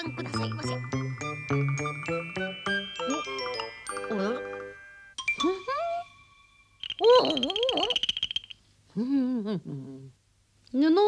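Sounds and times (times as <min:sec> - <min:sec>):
high steady tone: 0:00.0 - 0:08.6
rapid clicks: 0:06.8 - 0:08.6.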